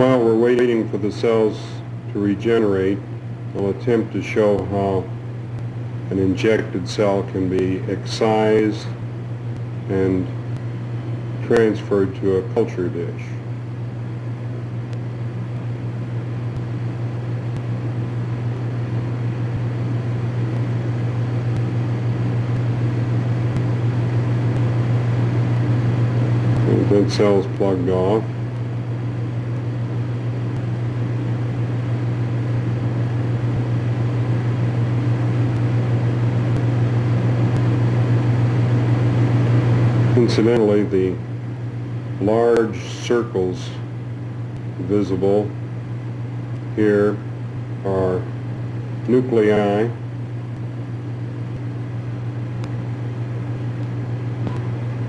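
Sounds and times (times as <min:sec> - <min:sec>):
low hum: 0:00.0 - 0:55.0.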